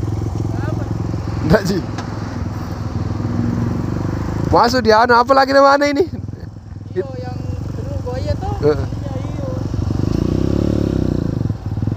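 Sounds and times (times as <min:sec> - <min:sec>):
motorcycle engine running: 0:00.0 - 0:11.9.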